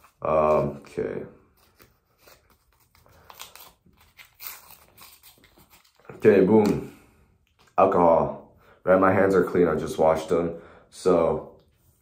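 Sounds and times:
foil wrapper crinkling and tearing: 0:01.6 - 0:06.2.

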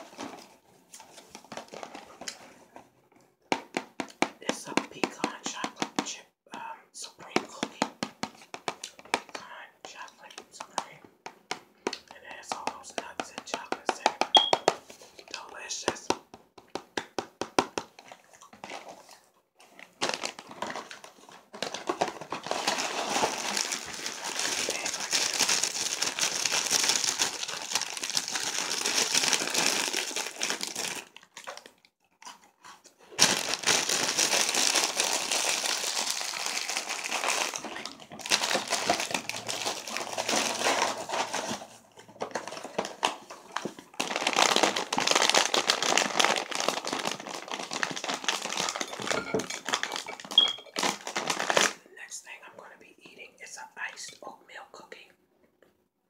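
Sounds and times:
foil snack bag crinkling: 0:18.6 - 0:32.5, 0:33.1 - 0:51.8.

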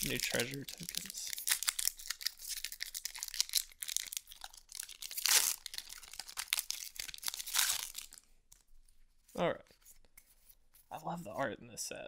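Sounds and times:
foil wrapper tearing and crinkling: 0:00.0 - 0:08.2.

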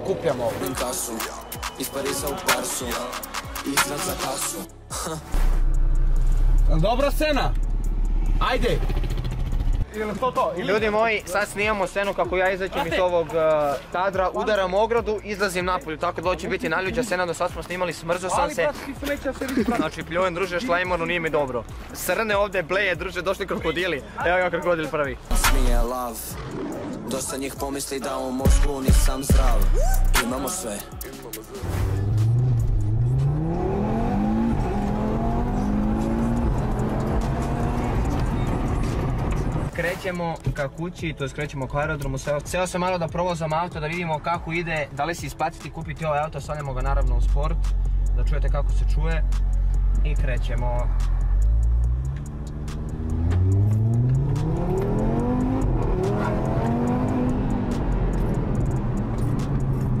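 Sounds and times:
car engine accelerating: 0:05.4 - 0:09.9, 0:31.6 - 0:39.7, 0:49.2 - 1:00.0.

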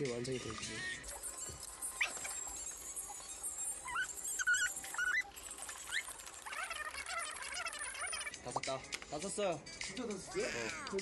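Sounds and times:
faint background music: 0:00.0 - 0:11.0
high squeaks rising in pitch: 0:00.8 - 0:08.6.

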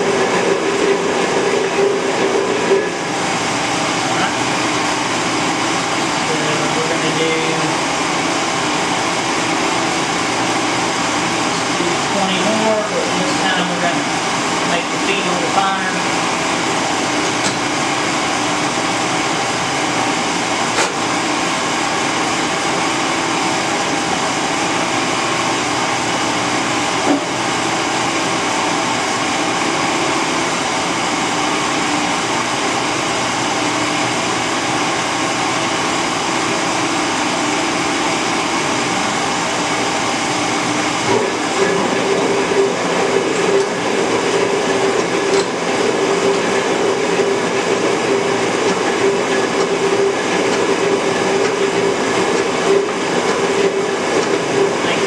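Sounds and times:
metal shaper running: 0:00.0 - 0:55.0.

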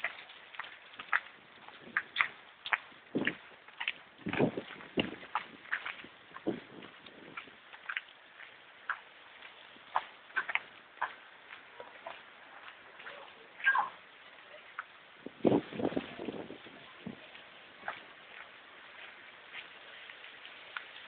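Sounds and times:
footsteps on wet pavement: 0:00.0 - 0:21.0
hail and rain falling: 0:00.0 - 0:21.0.

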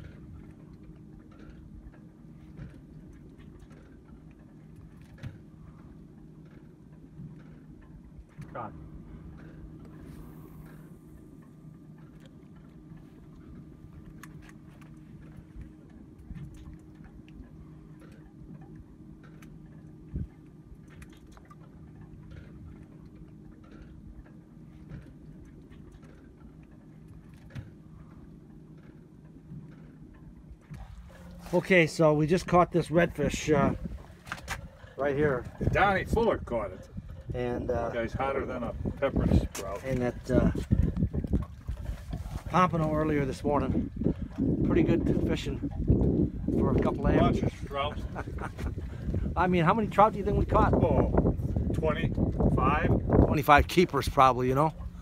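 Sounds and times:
boat motor humming: 0:00.0 - 0:55.0.

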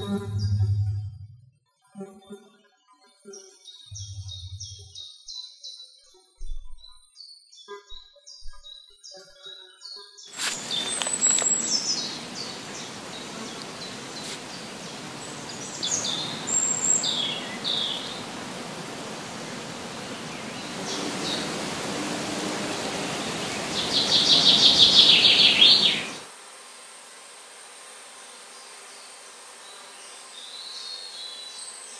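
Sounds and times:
birds calling and singing: 0:03.7 - 0:18.4, 0:19.6 - 0:26.2
outdoor ambience hiss: 0:10.2 - 0:31.9.

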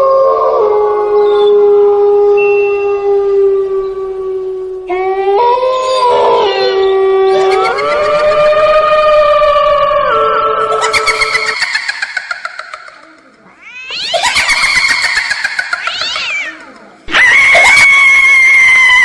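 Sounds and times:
cat-like yowling wails: 0:00.0 - 0:11.6, 0:13.6 - 0:19.0.

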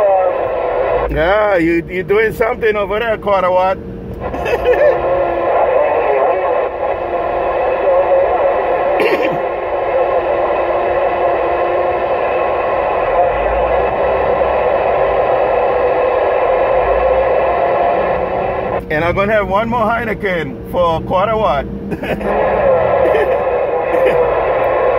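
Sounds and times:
radio hiss: 0:00.0 - 0:03.0, 0:03.6 - 0:24.9
garbled radio voice: 0:00.0 - 0:17.8, 0:18.4 - 0:24.9.

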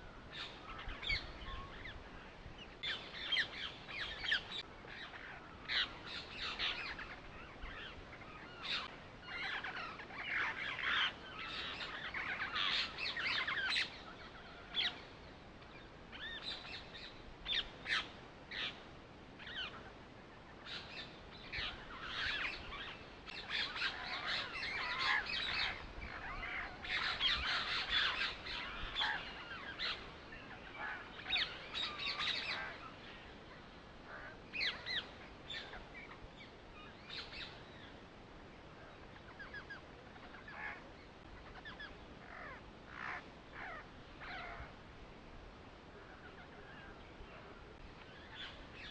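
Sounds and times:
birds chirping: 0:00.0 - 0:45.0, 0:45.7 - 0:48.9.

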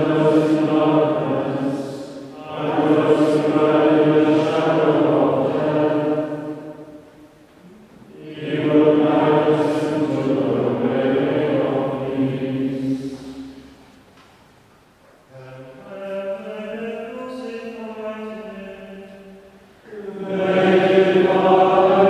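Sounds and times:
male choir singing plainchant: 0:00.0 - 0:06.9, 0:08.1 - 0:13.4, 0:19.9 - 0:22.0.

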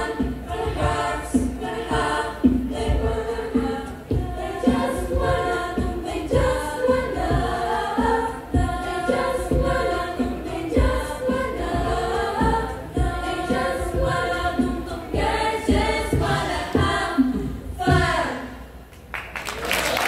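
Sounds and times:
low thumps: 0:00.0 - 0:18.6
choir of women singing in harmony: 0:00.0 - 0:18.8.

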